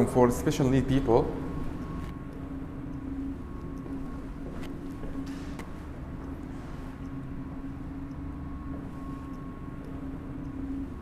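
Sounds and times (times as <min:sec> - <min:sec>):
low hum with held tone: 0:00.0 - 0:11.0.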